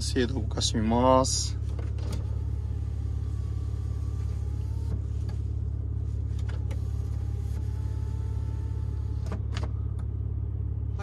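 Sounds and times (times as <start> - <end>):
car engine idling: 0.0 - 11.0
electric motor whine: 1.9 - 9.8.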